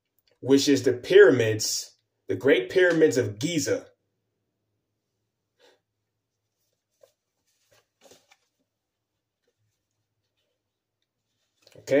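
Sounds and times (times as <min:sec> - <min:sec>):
paper rustling in hands: 0:06.3 - 0:12.0
paper crinkle: 0:06.5 - 0:08.8.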